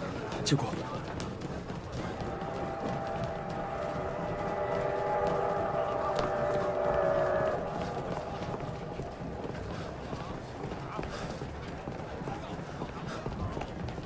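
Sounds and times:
crowd bustle: 0.0 - 14.0
footsteps of a crowd: 0.0 - 14.0
train whistle chord: 1.9 - 10.9.

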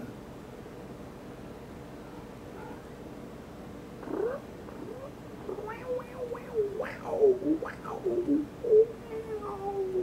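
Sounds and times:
cat meowing: 4.0 - 7.1, 8.7 - 10.0.

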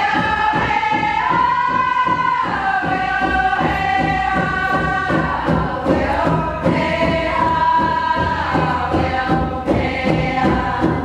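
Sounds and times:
group of voices singing: 0.0 - 11.0
steady drumbeat: 0.0 - 11.0.

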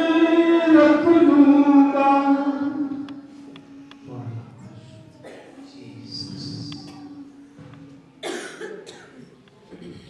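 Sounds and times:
person coughing: 5.2 - 5.6, 8.2 - 10.0.

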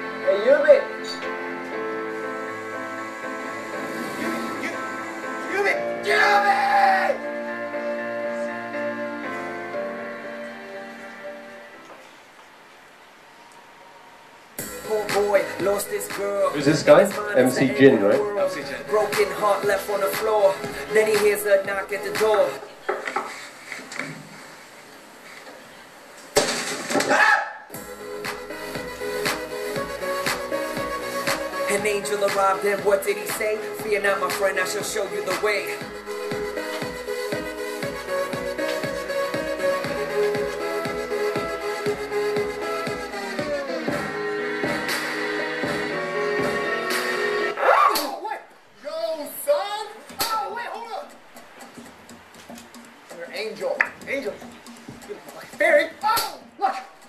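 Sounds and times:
faint music: 0.0 - 26.6, 27.7 - 57.0
speech over loudspeakers: 16.5 - 19.0.

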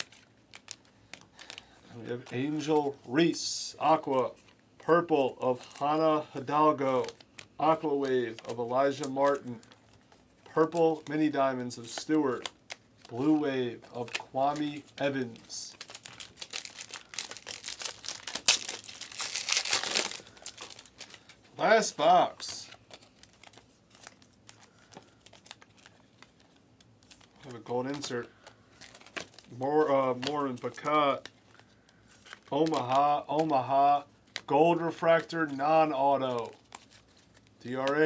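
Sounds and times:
trading cards clicking and rustling: 0.0 - 3.0, 5.7 - 33.7
foil wrapper crinkling: 0.0 - 38.0.

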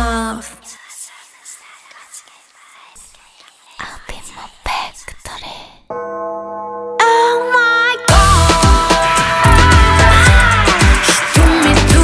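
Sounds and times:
breathy whispered vocals: 0.0 - 5.9
musical backing: 5.9 - 12.0.

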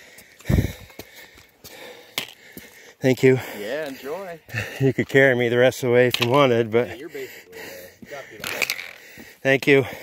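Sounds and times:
hard breathing: 0.0 - 5.0, 6.8 - 10.0
footsteps on wet rocky trail: 0.0 - 5.4, 7.0 - 10.0.

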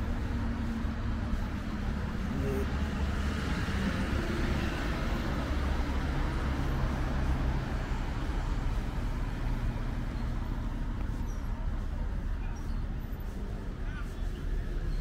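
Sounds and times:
road traffic rumble: 0.0 - 15.0.

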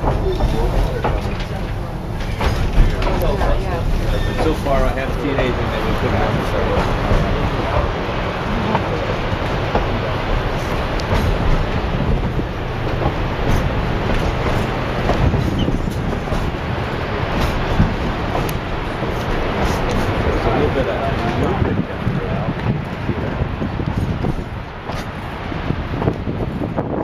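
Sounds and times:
train wheels rumbling on rails: 0.0 - 27.0.

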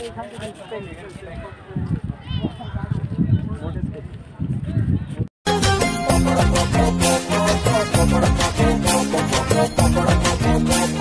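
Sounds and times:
people talking: 0.0 - 5.3.

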